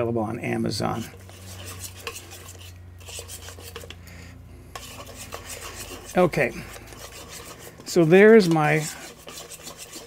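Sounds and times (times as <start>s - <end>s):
metal hook scraping bowl: 0.9s - 4.1s, 4.7s - 10.0s.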